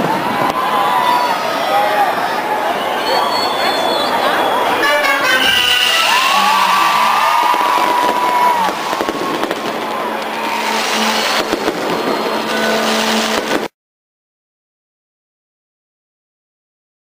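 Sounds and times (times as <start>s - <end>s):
fireworks bursting and crackling: 4.8s - 13.7s.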